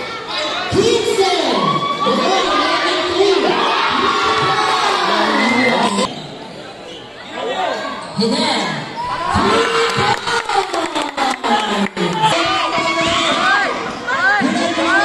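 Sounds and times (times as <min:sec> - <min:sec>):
spectators shouting and cheering: 0:00.0 - 0:06.4, 0:08.9 - 0:15.0.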